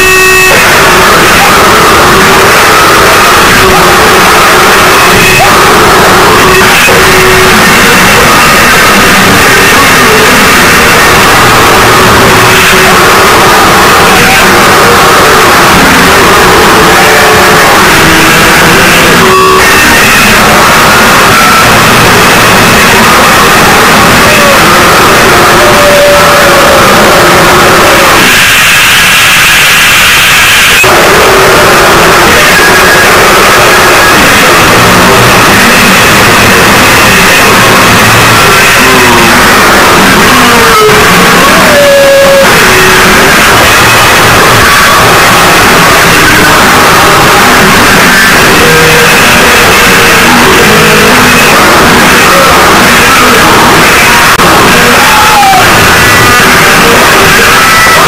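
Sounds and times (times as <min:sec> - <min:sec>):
squealing sliding tones: 0:00.0 - 0:57.0
distorted noise music: 0:00.0 - 0:58.0.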